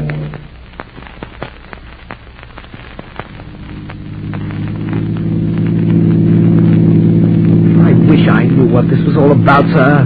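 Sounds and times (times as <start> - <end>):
low steady drone: 0.0 - 0.8, 3.1 - 10.0
record surface crackle: 0.0 - 10.0.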